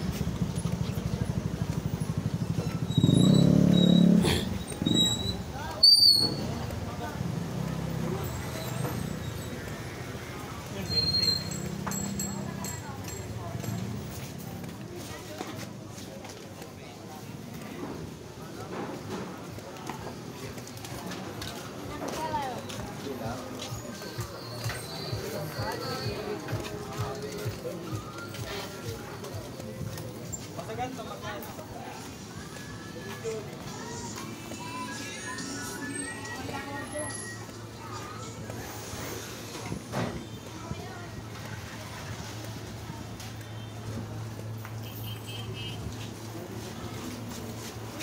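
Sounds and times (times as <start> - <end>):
small motorcycle engine: 0.0 - 5.3
chatter of passers-by: 0.0 - 48.0
street noise: 0.0 - 48.0
footsteps: 13.1 - 45.0, 45.8 - 48.0.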